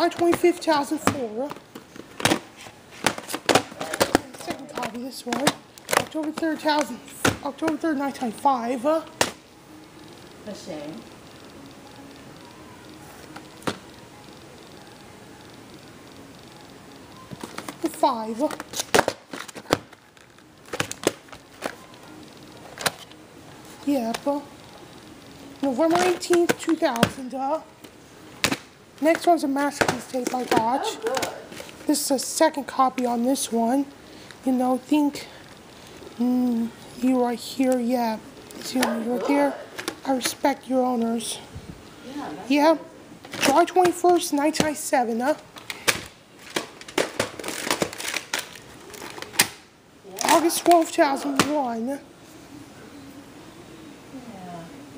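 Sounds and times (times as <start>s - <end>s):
plastic case clicks and crinkles: 0.1s - 7.8s, 13.2s - 13.9s, 17.2s - 23.2s, 27.8s - 31.9s, 45.4s - 49.6s.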